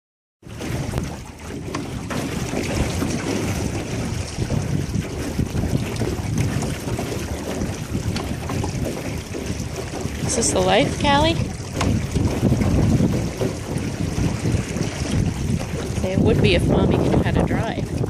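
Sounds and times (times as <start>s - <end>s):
water rushing past boat hull: 0.4s - 18.0s
wind buffeting microphone: 0.4s - 18.0s.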